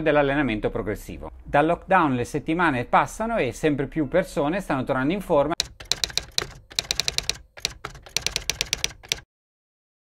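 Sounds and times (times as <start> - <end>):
keyboard keystroke clicks: 5.6 - 9.2.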